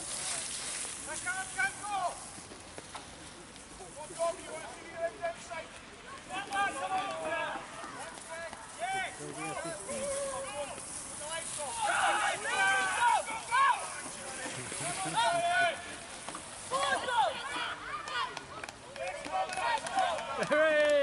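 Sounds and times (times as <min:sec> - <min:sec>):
spectators shouting: 0:06.1 - 0:16.0, 0:16.6 - 0:21.0.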